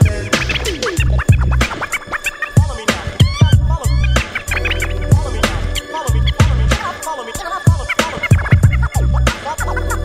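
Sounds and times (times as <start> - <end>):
steady kick drum: 0.0 - 1.7, 2.6 - 4.4, 5.0 - 6.8, 7.7 - 9.5
hip hop beat: 0.0 - 10.0
turntable scratching: 0.0 - 10.0.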